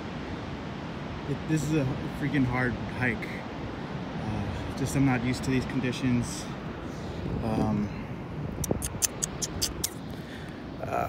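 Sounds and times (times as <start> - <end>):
windy hiss: 0.0 - 11.0.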